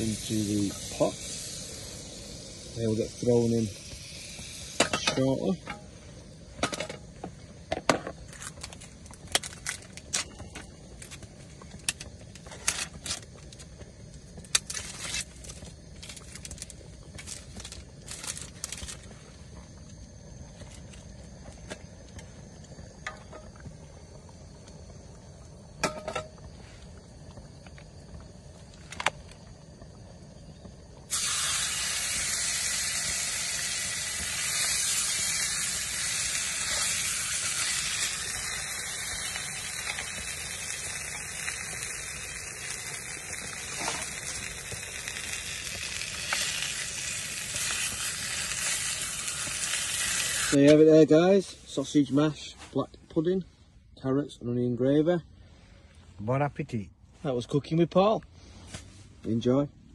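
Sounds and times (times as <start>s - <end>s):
food sizzling in a pan: 0.0s - 13.4s, 31.0s - 51.8s.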